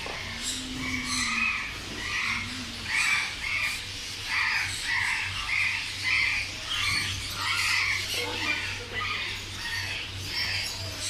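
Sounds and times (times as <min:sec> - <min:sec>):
parrots squawking: 0:00.0 - 0:11.0
steady low hum: 0:00.0 - 0:11.0.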